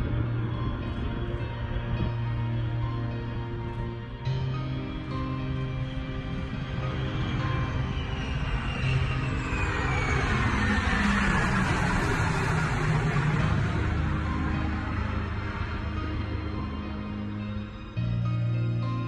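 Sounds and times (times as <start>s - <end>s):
jet aircraft passing overhead: 0.0s - 19.0s
orchestral background music: 0.0s - 19.0s.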